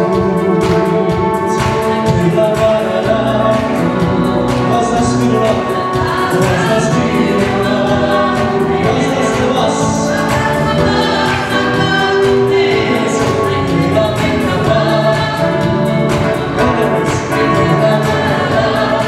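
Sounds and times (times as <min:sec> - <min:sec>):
electronic keyboard: 0:00.0 - 0:19.0
group singing gospel song: 0:00.0 - 0:19.0.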